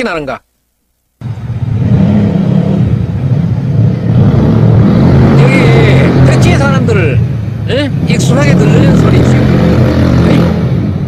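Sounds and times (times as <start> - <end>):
motorcycle engine drone: 1.2 - 11.0.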